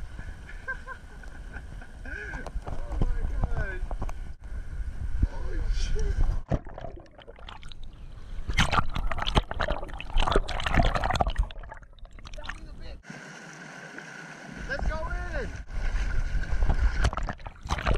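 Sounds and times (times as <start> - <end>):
seawater splashing around camera: 6.4 - 17.9.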